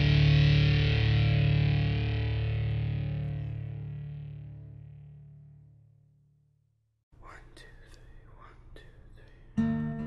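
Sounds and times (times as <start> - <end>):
acoustic guitar chords strummed: 0.0 - 5.5, 9.6 - 10.0
faint breathy scratchy sounds: 7.2 - 9.6
music track: 9.6 - 10.0.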